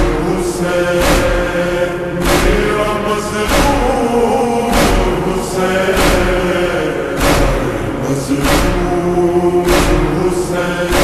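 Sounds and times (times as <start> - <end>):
chant-like vocal notes: 0.0 - 11.0
heavy beat: 0.0 - 11.0.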